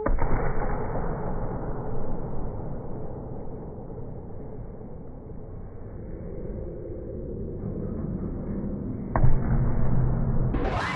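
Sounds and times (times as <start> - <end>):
sports hall background noise: 0.0 - 10.9.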